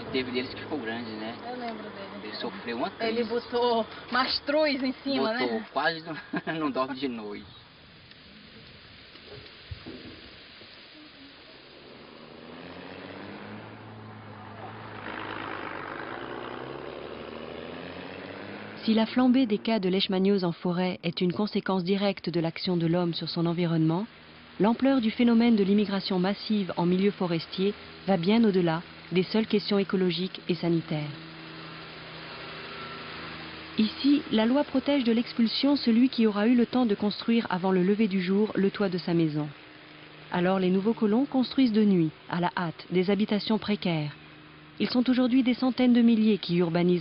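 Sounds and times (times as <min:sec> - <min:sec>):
steady background hiss: 0:00.0 - 0:47.0
vehicle engine humming: 0:00.0 - 0:47.0
rush of noise: 0:05.7 - 0:19.7.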